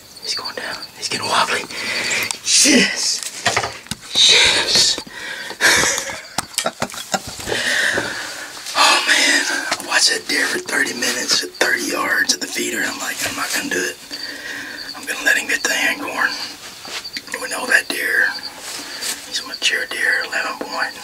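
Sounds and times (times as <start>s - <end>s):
man talking: 0.3s - 5.0s, 8.7s - 14.1s, 14.9s - 16.6s, 17.2s - 18.4s.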